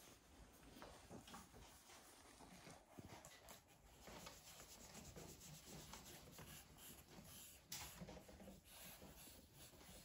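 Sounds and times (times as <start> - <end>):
charcoal scratching on paper: 4.1 - 10.0.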